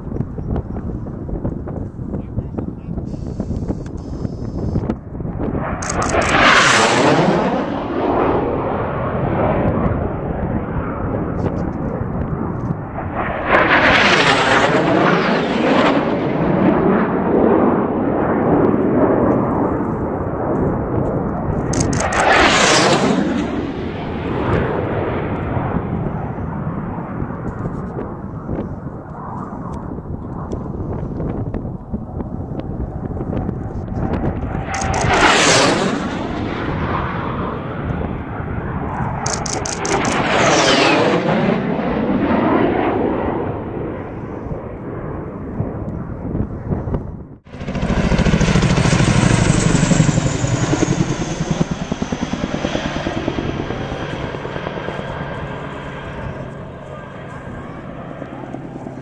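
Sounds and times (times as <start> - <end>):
racing airplanes flying past: 4.5 - 59.0.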